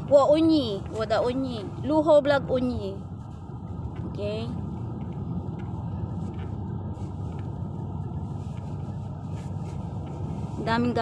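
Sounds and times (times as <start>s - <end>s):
road and engine noise in car cabin: 0.0s - 11.0s.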